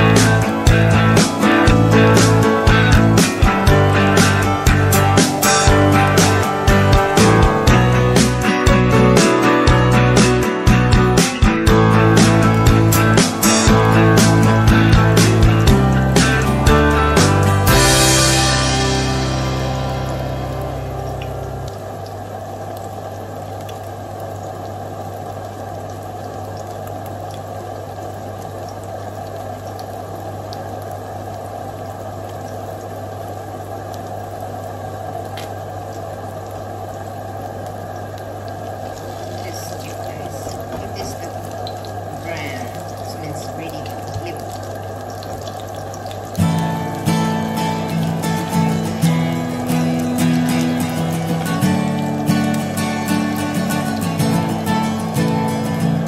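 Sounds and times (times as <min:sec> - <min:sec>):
guitar music: 0:00.0 - 0:21.9, 0:46.3 - 0:56.0
low steady hum: 0:11.7 - 0:56.0
patty sizzling in oil: 0:37.8 - 0:56.0.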